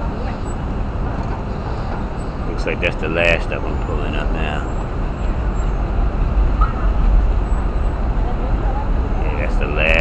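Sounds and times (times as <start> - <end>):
faint voices of passers-by: 0.0 - 10.0
traffic rumble: 0.0 - 10.0.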